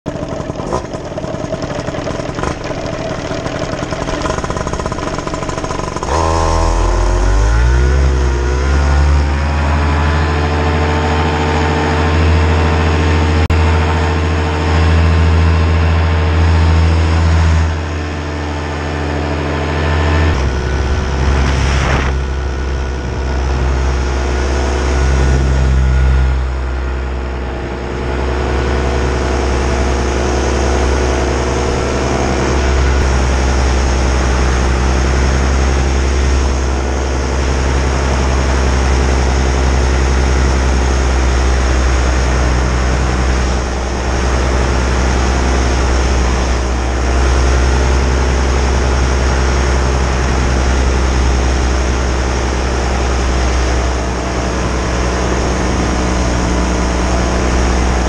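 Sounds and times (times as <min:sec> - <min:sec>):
paramotor engine and propeller: 0:00.0 - 0:58.0.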